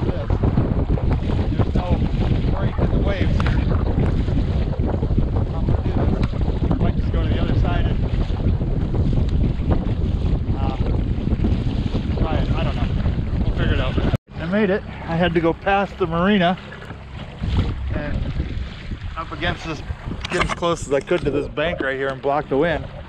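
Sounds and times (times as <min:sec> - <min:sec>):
waves slapping against kayak hull: 0:00.0 - 0:14.2, 0:15.6 - 0:23.0
wind buffeting microphone: 0:00.0 - 0:23.0.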